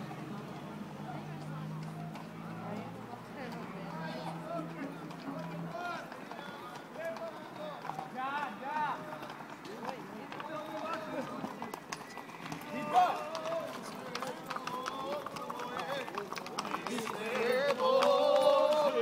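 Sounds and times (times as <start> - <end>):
hooves clip-clopping on asphalt: 0.2 - 19.0
people calling out: 3.4 - 19.0.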